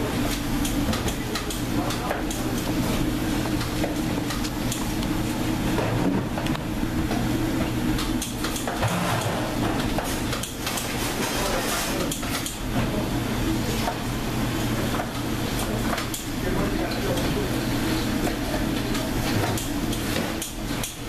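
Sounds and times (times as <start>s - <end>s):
kitchen machinery humming: 0.0s - 21.0s.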